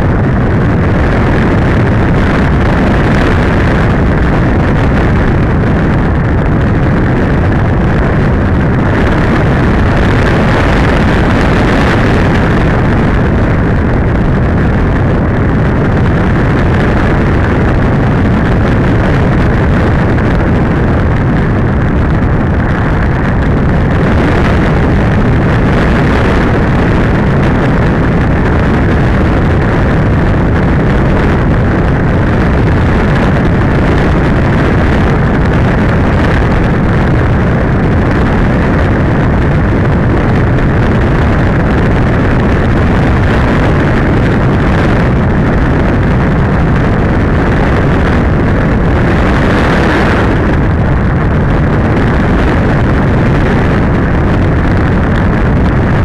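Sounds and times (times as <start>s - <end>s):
rush of airflow over microphone: 0.0s - 56.0s.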